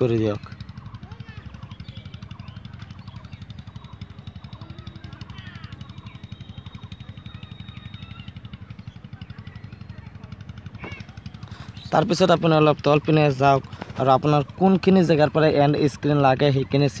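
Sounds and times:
low pulsing hum: 0.0 - 16.8
faint distant voices: 0.0 - 17.0.

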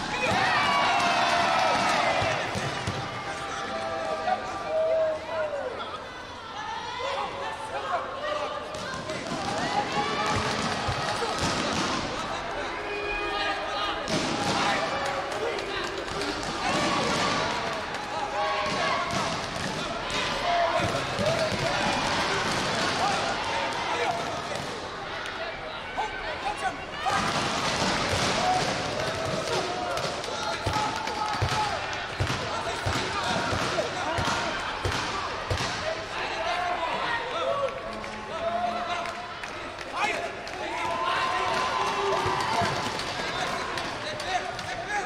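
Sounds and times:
voices shouting in a hall: 0.0 - 45.0.

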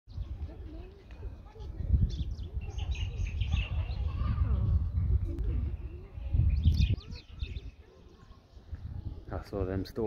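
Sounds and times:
small birds chirping: 0.1 - 10.0.

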